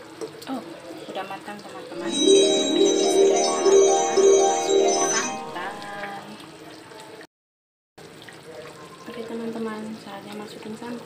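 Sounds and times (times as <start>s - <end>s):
bell-like chiming tune: 2.0s - 6.2s.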